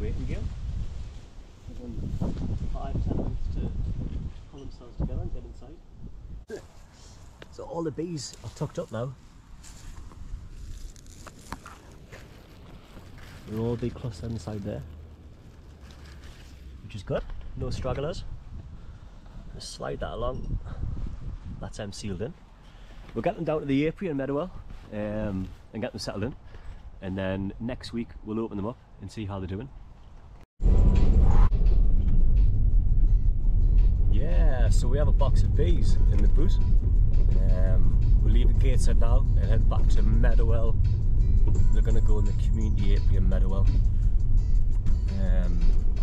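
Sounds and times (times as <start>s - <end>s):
wind rumble on microphone: 0.0s - 6.5s, 9.2s - 14.8s, 16.9s - 22.4s, 30.6s - 46.0s.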